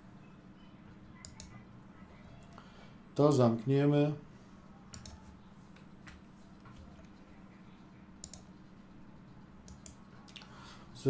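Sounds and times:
low steady hum: 0.0s - 11.0s
computer clicks: 1.2s - 1.6s, 4.9s - 5.3s, 8.2s - 8.6s, 9.6s - 10.4s.

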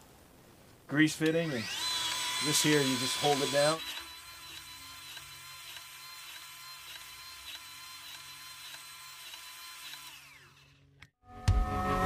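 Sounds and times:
power grease gun pumping: 1.3s - 10.8s.

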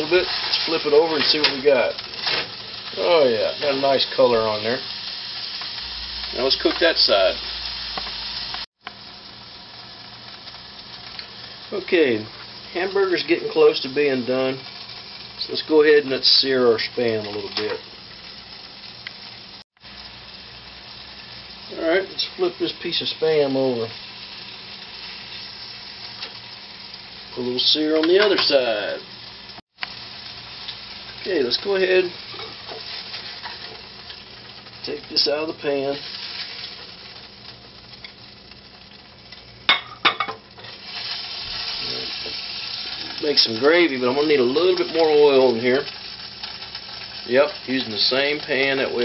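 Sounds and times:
patty sizzling in oil: 0.0s - 49.0s.

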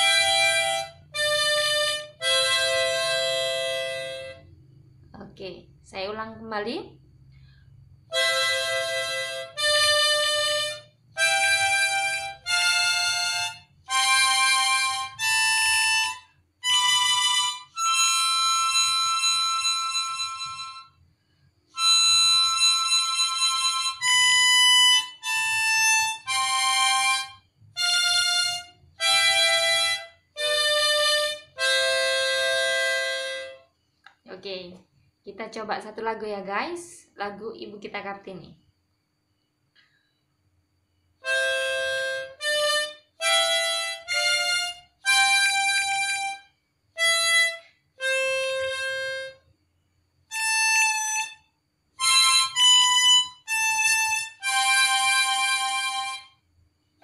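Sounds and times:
harmonica playing scale: 0.0s - 4.5s, 8.1s - 21.0s, 21.7s - 33.6s, 41.2s - 49.4s, 50.3s - 56.4s.

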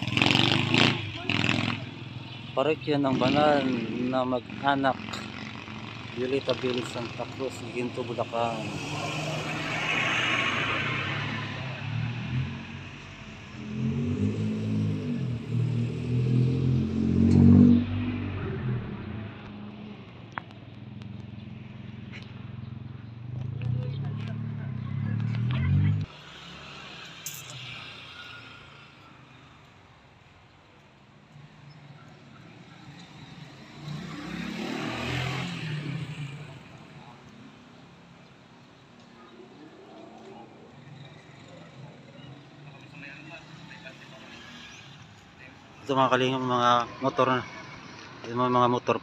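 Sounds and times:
vehicle engine revving past: 8.6s - 12.9s, 13.5s - 19.4s, 33.0s - 36.7s.

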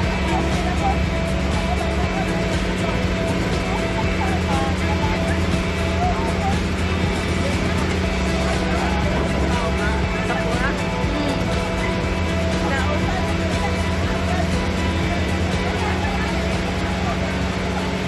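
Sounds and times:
boat engine droning: 0.0s - 18.0s
music: 0.0s - 18.0s
voices: 0.0s - 18.0s.

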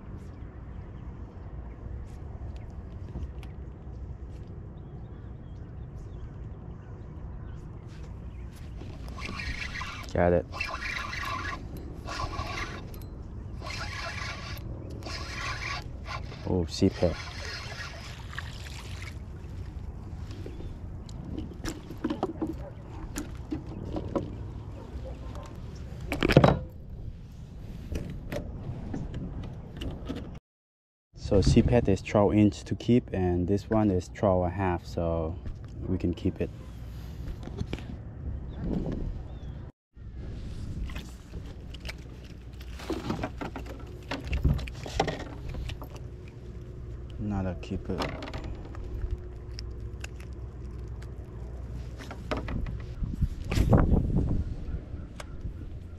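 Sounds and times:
knocks and scrapes in kayak: 20.2s - 26.6s, 40.4s - 46.0s, 51.8s - 54.2s
steady low rumble: 43.8s - 55.9s.

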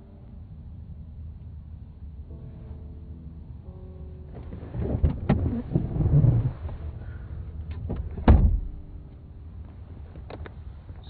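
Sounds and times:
car door shutting: 4.3s - 6.8s, 7.7s - 8.8s.

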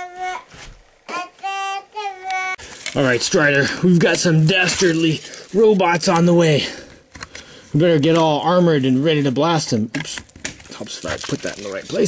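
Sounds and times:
child singing high notes: 0.0s - 2.6s.

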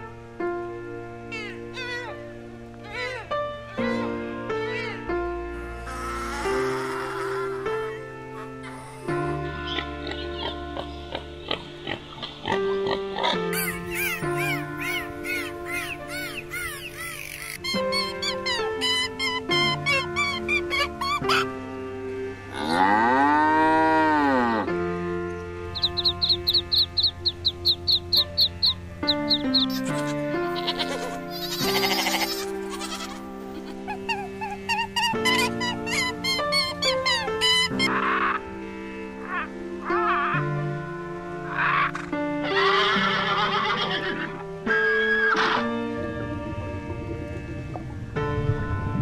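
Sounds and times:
background music: 0.0s - 49.0s
cow mooing: 22.5s - 24.7s.

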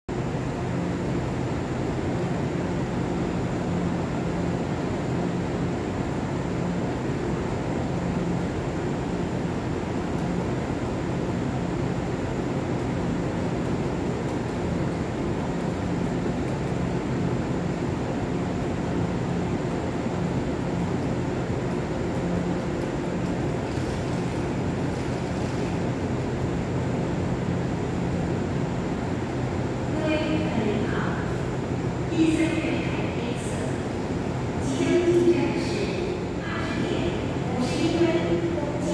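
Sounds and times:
electric train equipment humming: 0.1s - 38.9s
voices: 29.9s - 31.5s, 32.1s - 34.0s, 34.6s - 38.9s.

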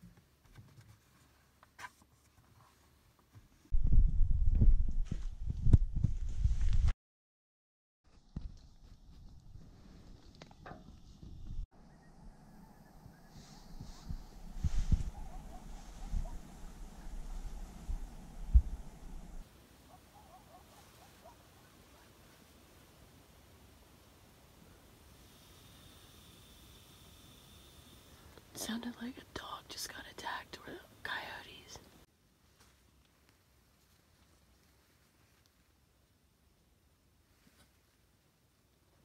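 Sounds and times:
low thumps and rumble: 3.7s - 6.9s, 10.5s - 19.4s
distant coyotes calling: 11.8s - 22.3s.

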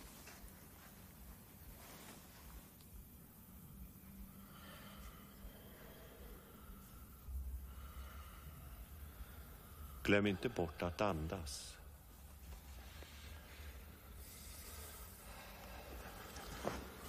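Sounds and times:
faint breathing: 0.2s - 17.0s.

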